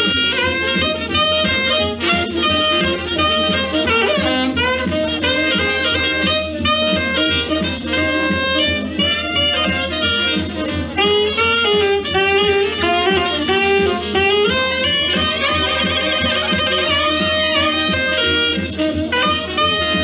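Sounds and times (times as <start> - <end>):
saxophone solo: 0.0 - 20.0
steady drum beat: 0.0 - 20.0.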